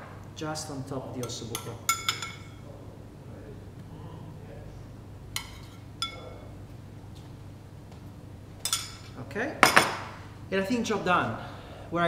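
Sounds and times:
low steady hum: 0.0s - 12.0s
ceramic bowl clinking: 1.2s - 2.6s, 5.4s - 6.4s, 8.6s - 10.0s.

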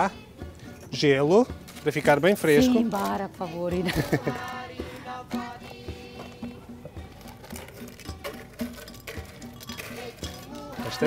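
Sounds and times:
background music: 0.0s - 11.0s
ice cubes clattering in glass jar: 7.3s - 11.0s.

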